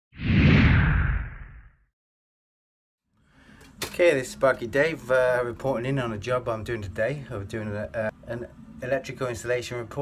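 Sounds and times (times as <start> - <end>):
whoosh with deep low end: 0.2 - 1.9.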